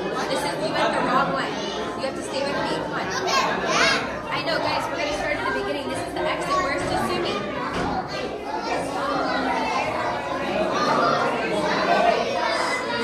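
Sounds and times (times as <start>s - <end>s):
chatter of many voices: 0.0s - 13.0s.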